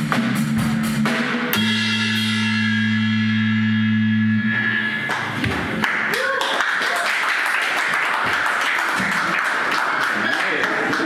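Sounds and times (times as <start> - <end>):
rock band playing: 0.0 - 5.8
cymbal crash: 1.6 - 5.5.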